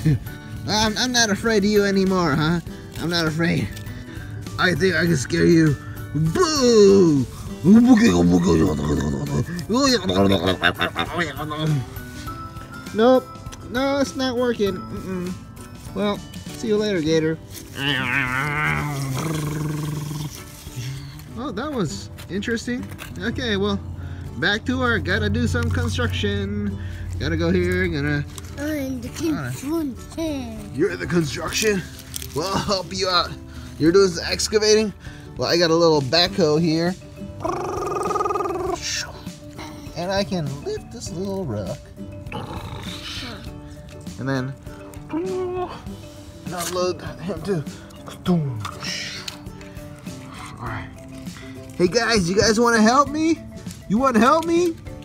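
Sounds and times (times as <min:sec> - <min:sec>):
background music: 0:00.0 - 0:55.0
man roaring and growling: 0:08.3 - 0:09.5, 0:17.8 - 0:20.3
man imitating engine noise: 0:37.4 - 0:38.8.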